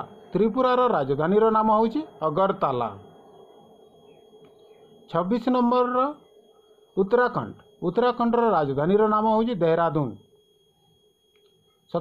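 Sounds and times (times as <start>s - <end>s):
steady hum: 0.0s - 12.0s
thin high tone: 0.0s - 12.0s.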